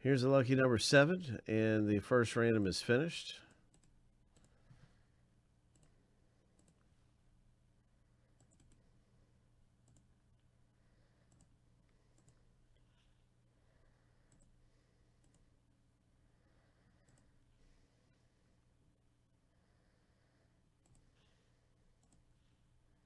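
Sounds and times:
low steady hum: 0:00.0 - 0:23.0
computer mouse clicks: 0:03.5 - 0:04.7, 0:05.7 - 0:06.9, 0:08.4 - 0:08.9, 0:09.8 - 0:10.1, 0:11.2 - 0:13.1, 0:14.3 - 0:14.5, 0:15.2 - 0:15.5, 0:17.0 - 0:17.3, 0:20.8 - 0:21.3, 0:22.0 - 0:22.4.

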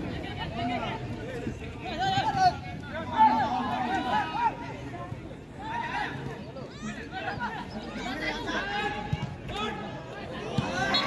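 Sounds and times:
overlapping crowd chatter: 0:00.0 - 0:11.0.

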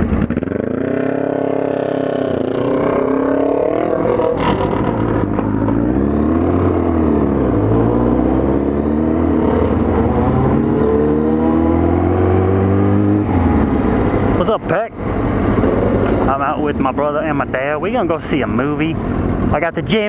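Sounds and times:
motorcycle engine accelerating: 0:00.0 - 0:14.5.

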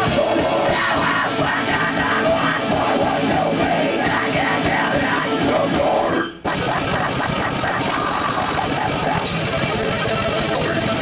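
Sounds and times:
rock band playing heavy music: 0:00.0 - 0:11.0.

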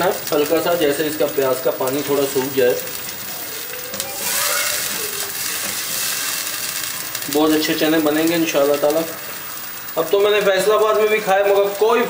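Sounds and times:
onion paste sizzling in oil: 0:00.0 - 0:12.0.

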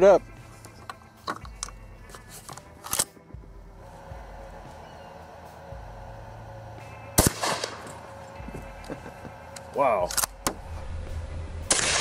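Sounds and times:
shotgun shot with echo: 0:07.2 - 0:07.9, 0:11.7 - 0:12.0.

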